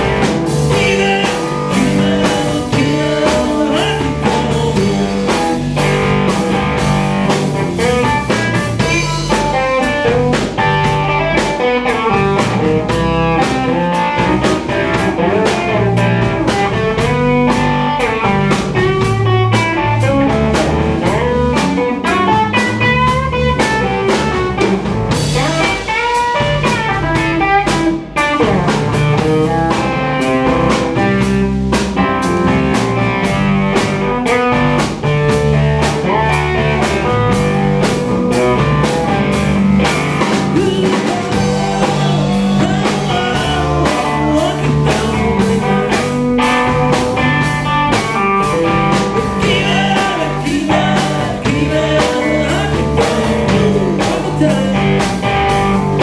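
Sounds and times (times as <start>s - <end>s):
drum kit beat: 0.0s - 56.0s
electric bass: 0.0s - 56.0s
electric guitar lead lines: 0.0s - 56.0s.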